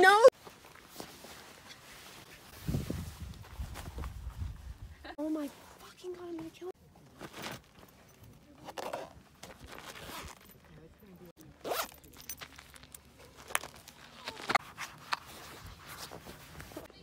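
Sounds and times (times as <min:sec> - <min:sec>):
boot zipper pulls: 0:08.6 - 0:10.4, 0:11.6 - 0:12.8.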